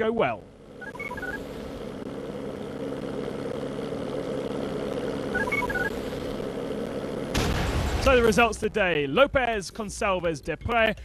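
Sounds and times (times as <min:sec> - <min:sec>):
engine drone: 0:00.0 - 0:11.0
high electronic beeps: 0:00.8 - 0:01.5, 0:05.3 - 0:06.0.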